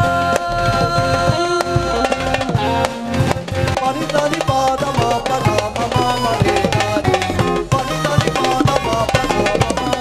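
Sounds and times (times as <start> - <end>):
electric keyboard: 0.0 - 10.0
harmonium: 0.0 - 10.0
steady drum beat: 0.0 - 10.0.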